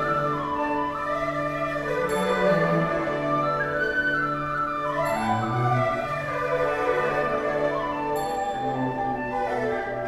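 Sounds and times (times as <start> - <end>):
traditional orchestra playing slowly: 0.0 - 10.0.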